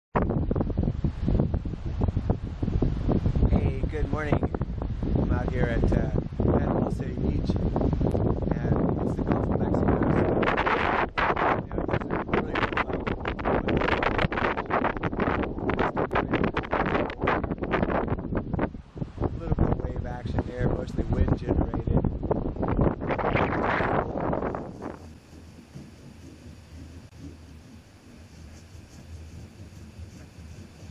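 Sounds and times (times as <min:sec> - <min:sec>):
wind buffeting microphone: 0:00.2 - 0:30.9.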